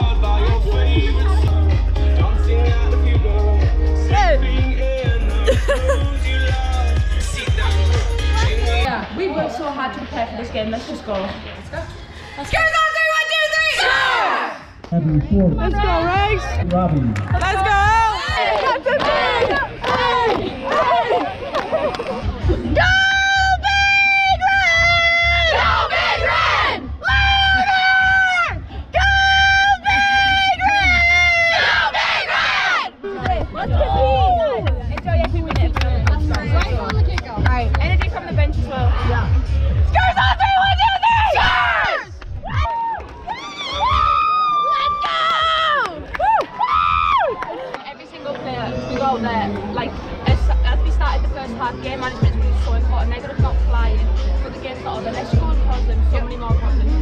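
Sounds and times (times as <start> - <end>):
young women shouting and cheering: 12.4 - 14.8, 17.4 - 21.6, 22.3 - 48.0.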